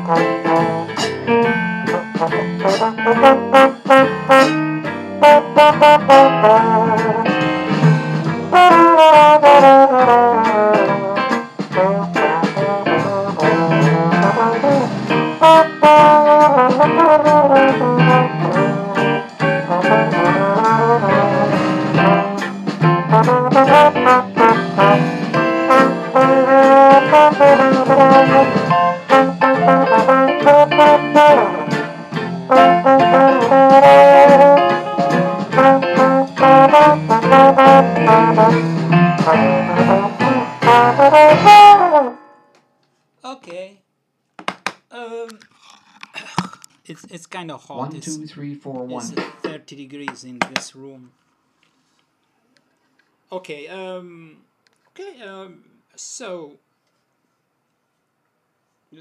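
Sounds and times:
valve trombone playing jazz: 0.0s - 42.3s.

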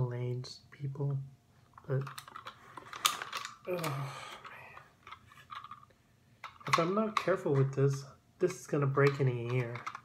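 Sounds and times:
sharp plastic clatter: 1.8s - 8.0s, 9.0s - 10.0s.

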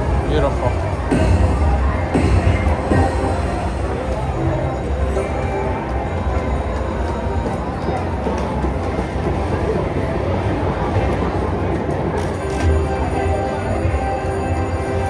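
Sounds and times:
low bass: 0.0s - 7.6s
slot machine music and effects: 0.0s - 7.7s, 12.4s - 15.0s.

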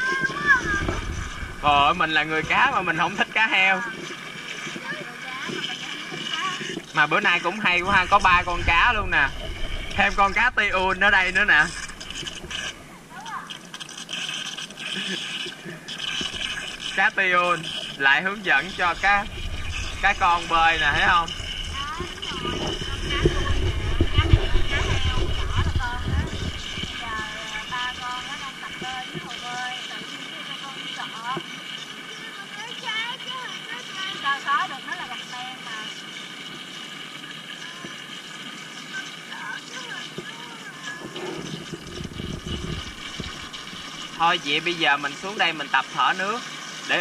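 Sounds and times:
steady high hum: 0.0s - 47.0s
low rumble: 0.5s - 3.4s, 7.6s - 13.0s, 16.3s - 29.0s.

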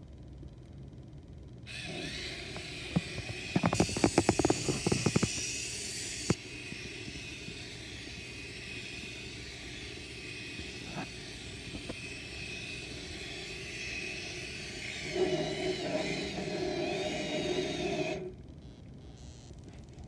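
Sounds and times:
toy motor and gears whirring: 1.7s - 18.4s.

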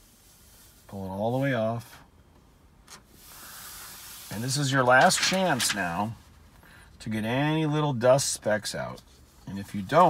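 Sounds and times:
liner peeling hiss: 3.2s - 4.7s
film peeling crackle: 4.9s - 6.1s.

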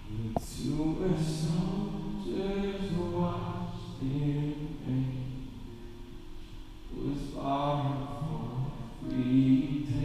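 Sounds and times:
voices singing worship music: 0.0s - 10.0s.

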